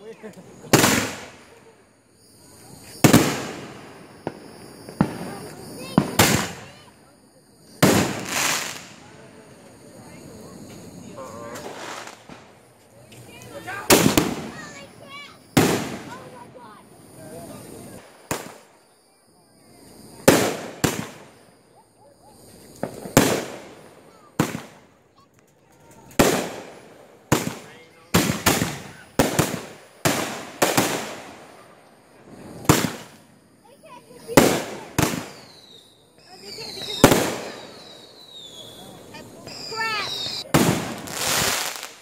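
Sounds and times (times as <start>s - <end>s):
fireworks bangs: 0.1s - 42.0s.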